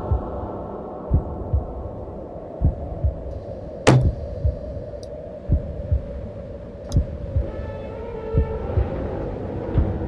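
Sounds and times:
steady low hum: 0.0 - 7.6
soft low thumps: 1.1 - 1.8, 3.9 - 4.7, 5.5 - 6.2, 6.9 - 7.6, 8.4 - 9.0
sharp click: 3.9 - 4.2.

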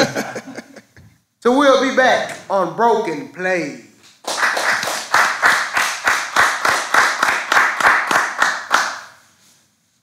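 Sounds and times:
hands clapping: 4.0 - 9.2.

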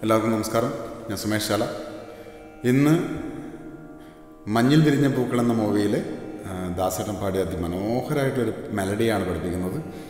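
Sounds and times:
man speaking: 0.0 - 1.8, 2.6 - 3.3, 4.5 - 9.9.

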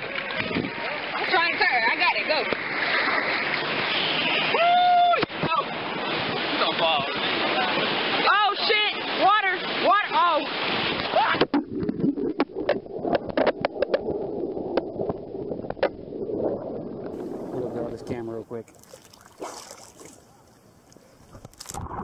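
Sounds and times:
muffled underwater wash: 0.0 - 22.0
rushing whitewater: 0.1 - 11.5
people yelling: 4.4 - 5.3
underwater knocks and clicks: 11.4 - 17.2.

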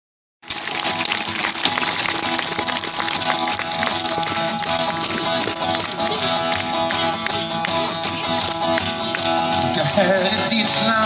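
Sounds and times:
acoustic guitar strumming: 0.4 - 11.0.

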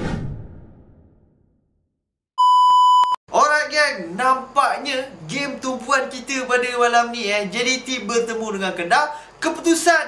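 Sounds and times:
loud electronic beep: 2.4 - 3.2
man speaking: 3.3 - 10.0.

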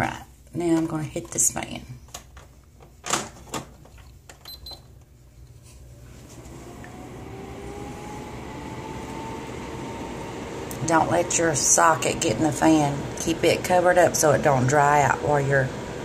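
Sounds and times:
electric fan whirring: 2.1 - 16.0.

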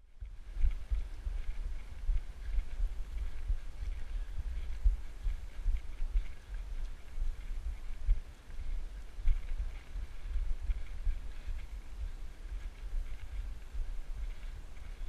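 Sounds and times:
wind buffeting microphone: 0.0 - 15.0
running footfalls on steps: 0.2 - 15.0.

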